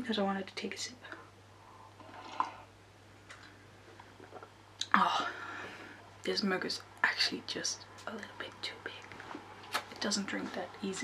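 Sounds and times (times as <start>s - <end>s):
soft swallowing: 1.8s - 4.9s
person slurping tea: 2.0s - 2.7s.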